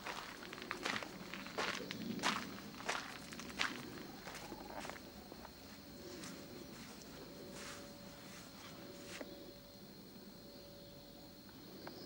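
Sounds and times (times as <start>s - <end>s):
footsteps on garden path: 0.0s - 9.3s.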